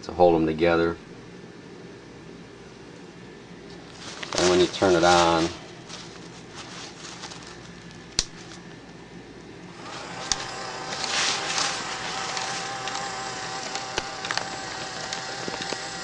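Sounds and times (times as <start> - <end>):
toy gear motor whining: 9.7 - 16.0.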